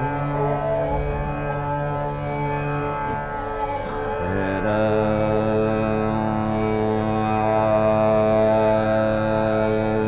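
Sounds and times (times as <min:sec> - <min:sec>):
continuous drone: 0:00.0 - 0:10.0
man singing classical vocals: 0:04.2 - 0:10.0.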